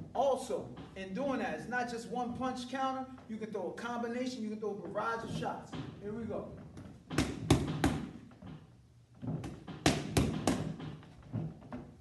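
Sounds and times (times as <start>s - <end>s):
boxing gloves smacking mitts: 6.8s - 8.4s, 9.3s - 11.1s.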